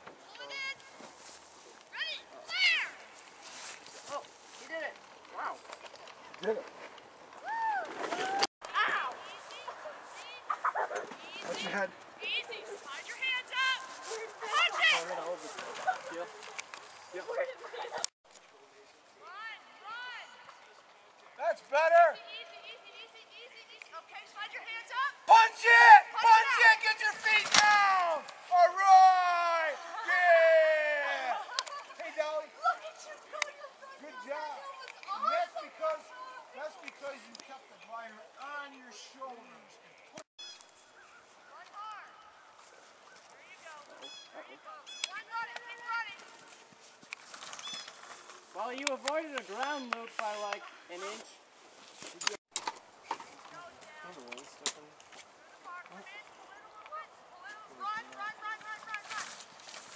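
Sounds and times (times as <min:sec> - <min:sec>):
people calling out: 0:12.2 - 0:16.3, 0:22.1 - 0:36.6
distant high-pitched voices calling: 0:40.4 - 0:46.5.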